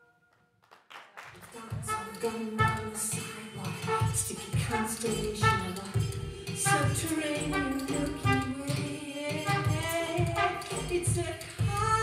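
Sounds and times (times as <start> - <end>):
woman singing: 1.4 - 12.0
processed trumpet melody: 1.8 - 3.1, 3.8 - 6.0, 6.6 - 8.8, 9.4 - 11.0.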